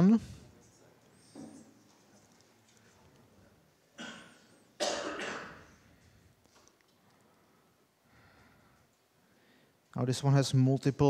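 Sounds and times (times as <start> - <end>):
man coughing: 4.0 - 5.8.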